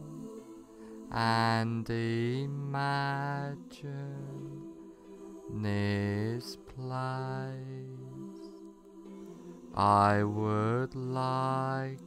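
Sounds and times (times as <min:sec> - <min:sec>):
calm meditation music: 0:00.0 - 0:12.0.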